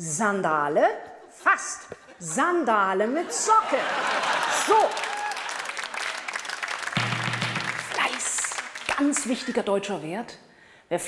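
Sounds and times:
woman speaking: 0.0s - 3.8s, 7.8s - 11.0s
audience applauding: 3.8s - 9.6s.

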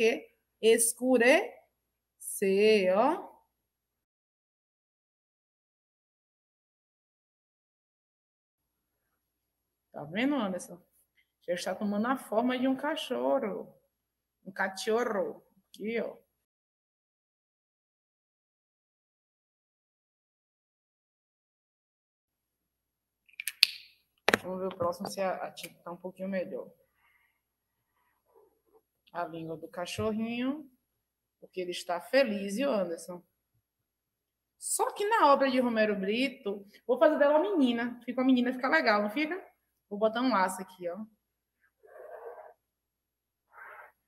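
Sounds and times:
plastic marker clicks: 23.4s - 24.4s
marker scratching on paper: 41.8s - 42.6s, 43.5s - 44.0s.

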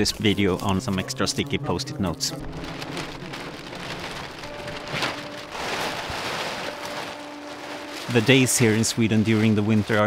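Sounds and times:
plastic tarp rustling and crackling: 0.0s - 10.0s.

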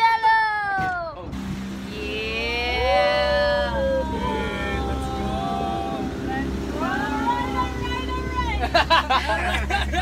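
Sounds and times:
boat motor humming: 1.2s - 10.0s.

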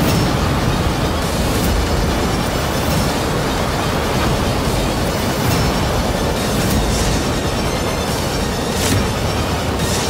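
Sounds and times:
dramatic background score drone: 0.0s - 10.0s.

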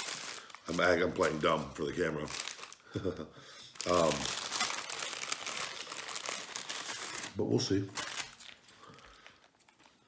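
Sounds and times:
paper wrapper crinkling: 0.0s - 3.1s, 3.7s - 10.0s.

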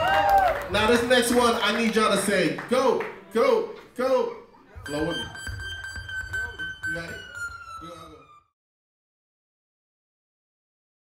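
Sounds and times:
high-pitched electronic tone: 4.8s - 8.5s.

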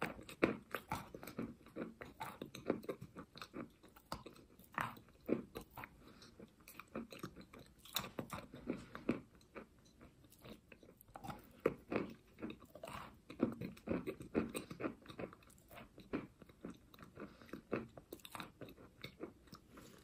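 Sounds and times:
chalk being chewed crunching: 0.0s - 20.0s.

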